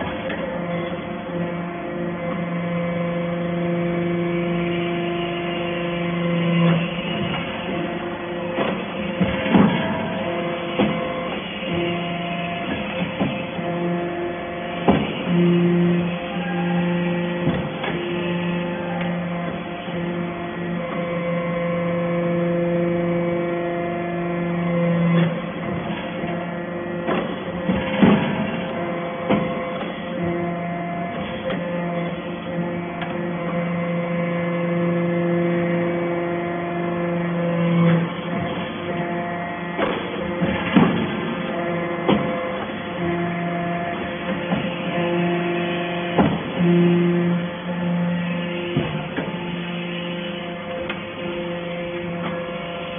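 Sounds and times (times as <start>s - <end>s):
hydraulic unit humming: 0.0s - 52.9s
press knocking and clanking: 8.5s - 12.0s, 27.0s - 30.4s, 39.8s - 42.8s.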